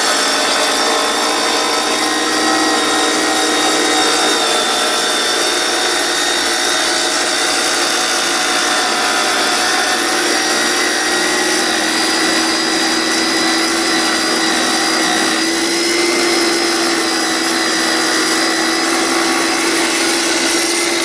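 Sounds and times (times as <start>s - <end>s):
wet tile saw cutting tile: 0.0s - 21.0s.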